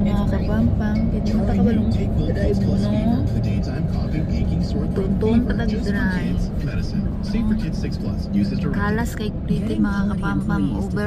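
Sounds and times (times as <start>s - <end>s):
car road noise rumble: 0.0s - 11.0s
radio voices talking: 0.0s - 11.0s.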